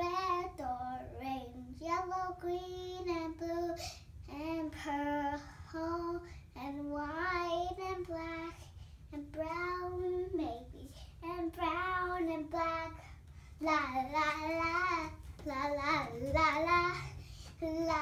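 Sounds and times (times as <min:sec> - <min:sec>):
girl singing unaccompanied: 0:00.0 - 0:18.0.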